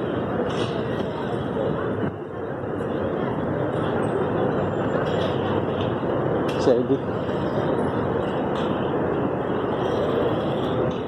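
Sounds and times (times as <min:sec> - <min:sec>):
street ambience rushing noise: 0:00.0 - 0:11.0.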